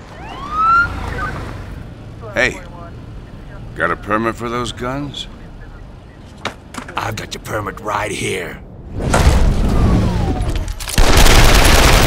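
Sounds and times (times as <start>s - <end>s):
police siren whoop: 0.0s - 1.6s.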